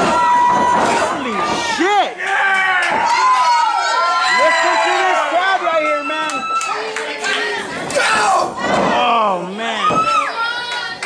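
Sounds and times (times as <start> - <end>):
crowd shouting and yelling: 0.0 - 11.0.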